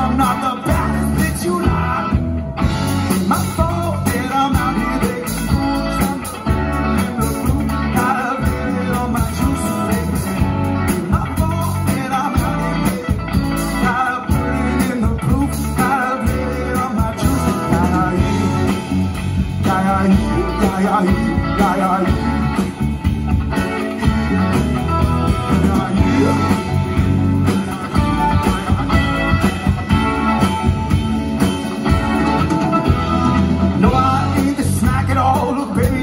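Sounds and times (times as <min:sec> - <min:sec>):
lead vocal singing: 0:00.0 - 0:22.8, 0:25.1 - 0:27.1, 0:32.8 - 0:36.0
live rock band playing: 0:00.0 - 0:36.0.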